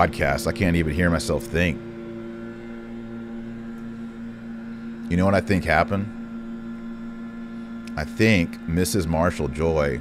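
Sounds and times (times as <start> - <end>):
leaf blower droning: 0.0 - 10.0.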